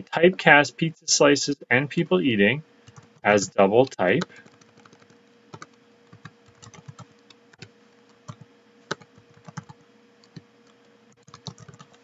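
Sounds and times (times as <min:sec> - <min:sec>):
faint steady hum: 0:00.0 - 0:12.0
keyboard typing clicks: 0:04.2 - 0:07.7, 0:08.3 - 0:12.0.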